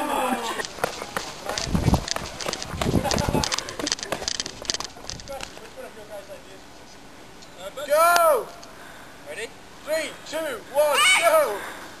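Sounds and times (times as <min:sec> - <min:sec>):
people laughing: 0:00.0 - 0:01.6, 0:02.8 - 0:04.6
crackling and clicking: 0:00.5 - 0:05.7.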